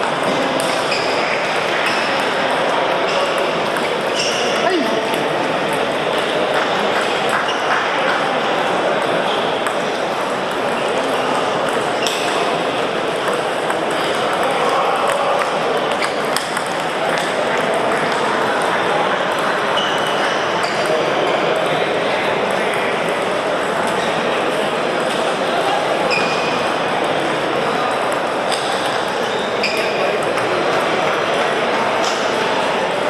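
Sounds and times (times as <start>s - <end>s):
hubbub of voices: 0.0s - 33.0s.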